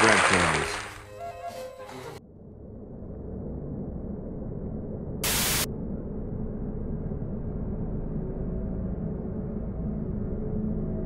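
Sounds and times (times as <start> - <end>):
low dark drone: 0.0 - 11.0
burst of static hiss: 5.2 - 5.7.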